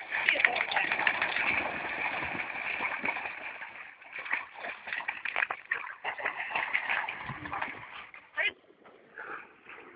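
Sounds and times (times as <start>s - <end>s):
dogs splashing in water: 0.0s - 8.3s
people talking: 0.2s - 0.7s.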